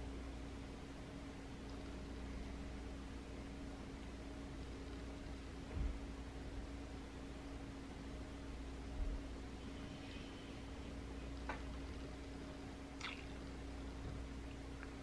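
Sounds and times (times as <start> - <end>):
low hum: 0.0 - 15.0.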